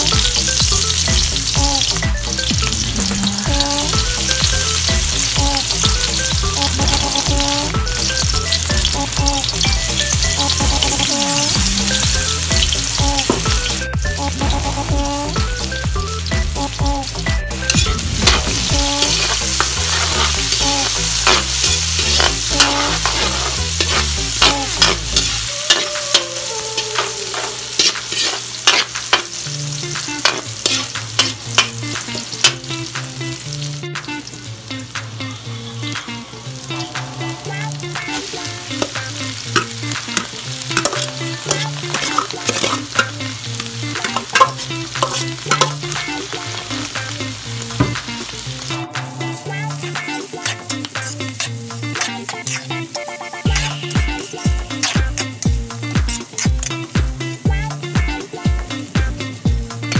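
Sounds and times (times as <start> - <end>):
food sizzling in hot oil: 0.0 - 59.9
utensil scraping a pan: 27.0 - 29.3, 39.6 - 43.1, 44.0 - 45.8.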